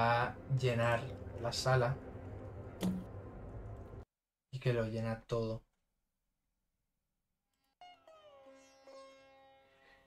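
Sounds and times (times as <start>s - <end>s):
sitar music over a drone: 7.8s - 10.0s.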